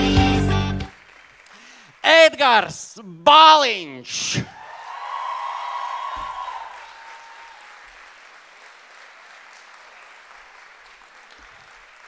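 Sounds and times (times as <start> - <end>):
audience applause: 0.9 - 2.9, 4.5 - 12.0.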